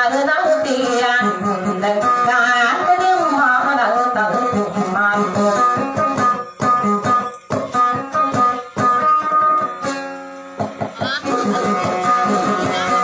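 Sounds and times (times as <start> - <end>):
acoustic guitar picked melody: 0.0 - 13.0.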